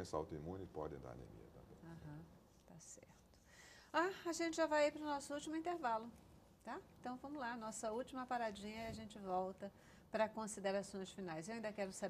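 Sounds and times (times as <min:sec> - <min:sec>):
woman speaking: 0:01.8 - 0:03.3, 0:03.9 - 0:12.0
soft breathy whispers: 0:01.9 - 0:04.0.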